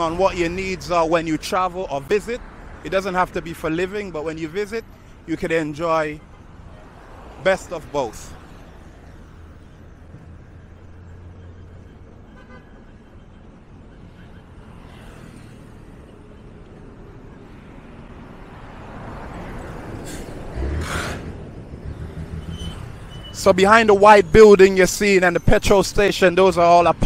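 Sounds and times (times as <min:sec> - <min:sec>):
rumble of passing traffic: 0:00.0 - 0:27.0
vehicle passing close: 0:17.8 - 0:23.6.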